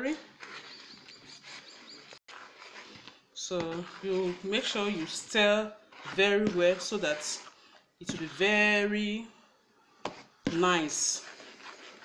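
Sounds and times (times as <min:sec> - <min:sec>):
spoon stirring batter in bowl: 0:00.1 - 0:12.0
small bird chirping: 0:00.6 - 0:02.2.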